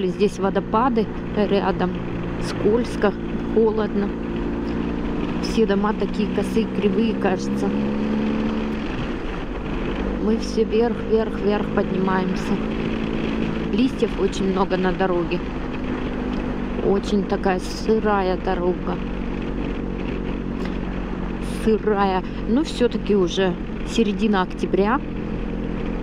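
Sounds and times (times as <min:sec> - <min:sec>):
motorcycle engine running: 0:00.0 - 0:26.0
road noise: 0:00.0 - 0:26.0.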